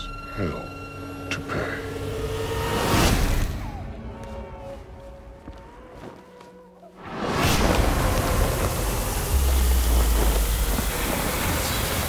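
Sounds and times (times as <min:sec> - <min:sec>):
loud rushing static noise: 0:07.1 - 0:12.0.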